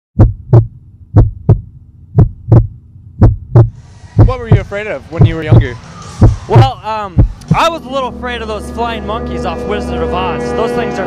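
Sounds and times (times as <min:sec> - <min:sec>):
heartbeat thumps: 0:00.2 - 0:07.7.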